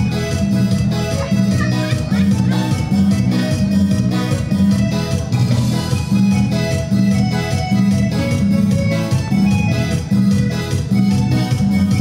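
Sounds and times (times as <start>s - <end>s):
latin dance music on keyboard: 0.0s - 12.0s.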